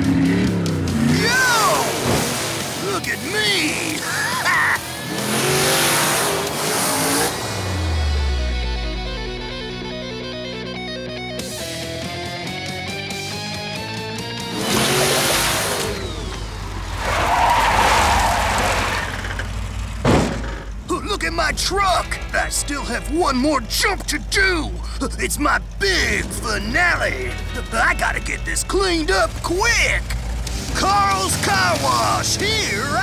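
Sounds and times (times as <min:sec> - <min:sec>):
background music: 0:00.0 - 0:18.4, 0:20.8 - 0:33.0
cartoon engine and rushing noise: 0:14.4 - 0:20.8.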